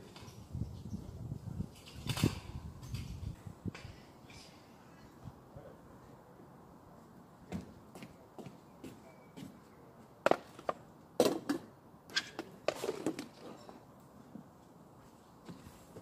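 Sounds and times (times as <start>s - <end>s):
footsteps on wooden decking: 7.4s - 10.7s, 14.3s - 16.0s.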